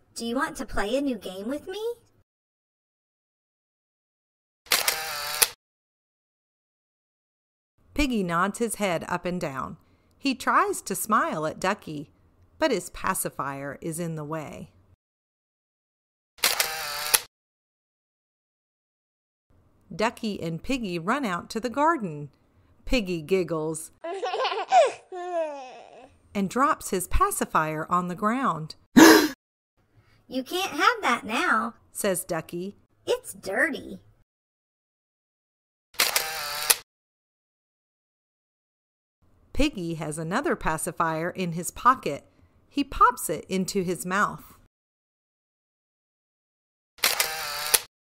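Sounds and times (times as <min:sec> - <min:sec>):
camera shutter click and whir: 0:04.7 - 0:05.6, 0:16.4 - 0:17.3, 0:36.0 - 0:36.8, 0:47.0 - 0:47.9
high-pitched childlike giggle: 0:24.0 - 0:26.0.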